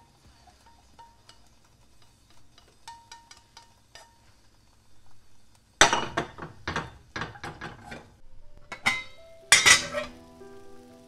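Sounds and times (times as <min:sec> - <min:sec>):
metal sieve knocking on saucepan: 0:02.6 - 0:04.1, 0:05.8 - 0:08.0
soft background music: 0:08.4 - 0:11.0.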